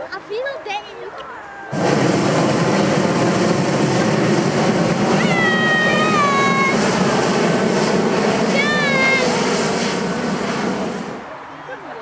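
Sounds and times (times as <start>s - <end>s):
propane burner roaring: 1.7s - 11.4s
high call with overtones: 5.1s - 11.2s.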